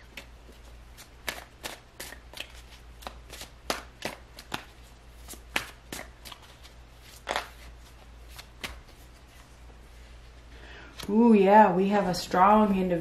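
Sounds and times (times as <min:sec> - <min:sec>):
cards being shuffled: 0:00.0 - 0:09.5
steady low hum: 0:00.0 - 0:13.0.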